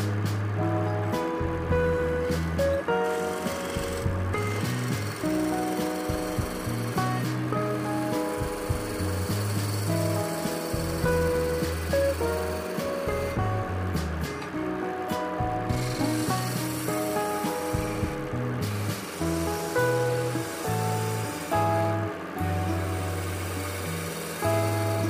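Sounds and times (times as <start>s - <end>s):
background music with bass line: 0.0s - 25.0s
chisel scraping wood on lathe: 2.1s - 14.3s, 15.7s - 25.0s.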